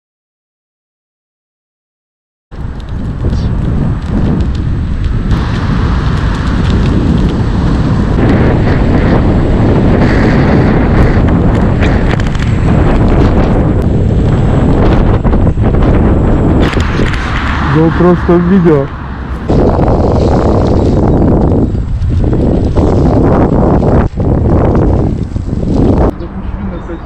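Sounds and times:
wind rumble on microphone: 2.5s - 27.0s.

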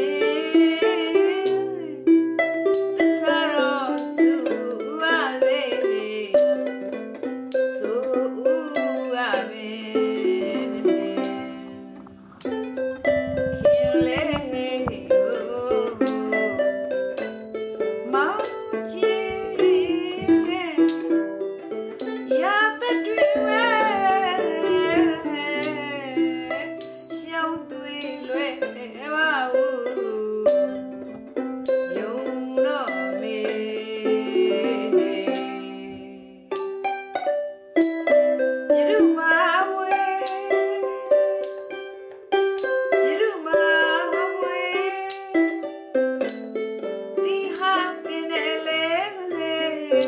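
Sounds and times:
woman singing with vibrato: 0.0s - 2.2s, 3.0s - 6.8s, 7.7s - 21.4s, 22.0s - 30.9s, 31.7s - 36.6s, 38.7s - 41.4s, 42.6s - 45.6s, 47.2s - 50.0s
plucked strings: 0.0s - 50.0s
small bell ting: 2.8s - 3.1s, 7.5s - 7.9s, 22.0s - 22.4s, 26.8s - 27.3s, 28.0s - 28.4s, 31.6s - 32.0s, 36.6s - 37.2s, 37.8s - 38.2s, 41.4s - 42.0s, 46.2s - 46.8s.

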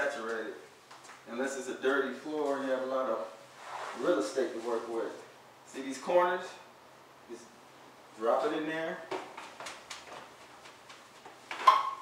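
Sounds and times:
mop rubbing on concrete: 3.5s - 5.3s.

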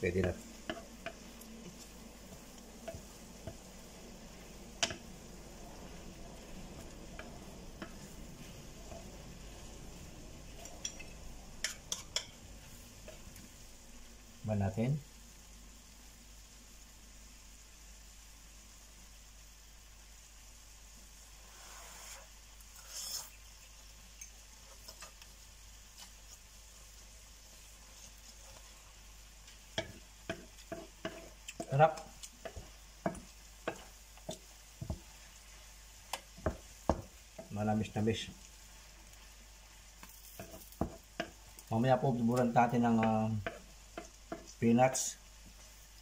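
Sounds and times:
food sizzling in a pan: 0.0s - 46.0s
utensils tapping against pan: 0.2s - 3.7s, 4.8s - 5.2s, 10.5s - 12.4s, 29.5s - 35.1s, 36.1s - 37.5s, 40.0s - 41.4s, 42.4s - 44.6s.

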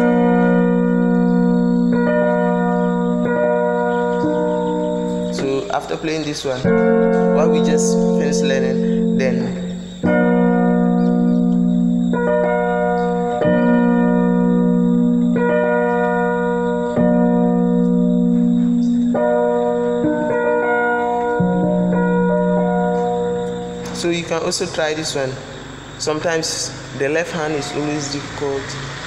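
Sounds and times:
electronic keyboard chords: 0.0s - 29.0s.

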